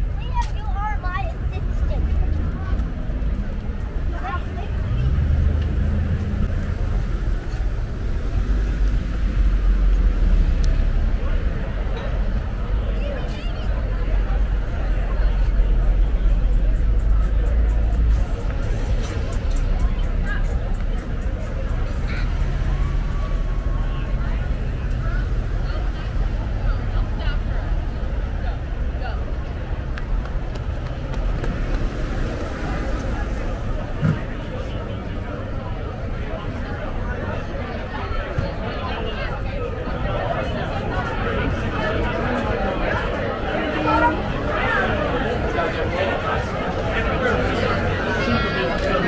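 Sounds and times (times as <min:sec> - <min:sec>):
people talking: 0:00.0 - 0:49.0
people's voices: 0:00.0 - 0:49.0
cars driving past: 0:01.2 - 0:49.0.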